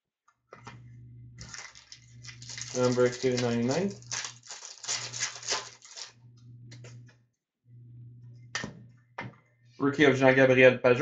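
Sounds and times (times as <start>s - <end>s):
low hum: 0.6s - 9.9s
trading cards rustling flicks: 1.4s - 6.1s.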